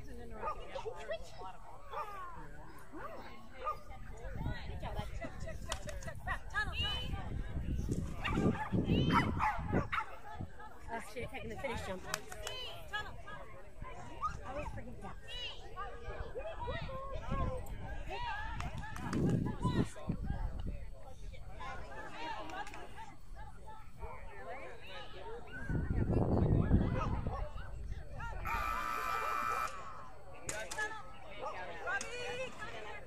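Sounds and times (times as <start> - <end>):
voices: 0.0 - 33.0
electronic buzzer tone: 28.5 - 29.8.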